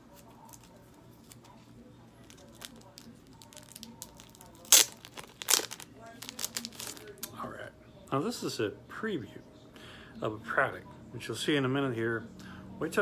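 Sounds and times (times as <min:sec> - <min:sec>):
packaging crinkling and rustling: 0:00.0 - 0:07.3
packaging ripping: 0:02.2 - 0:07.3.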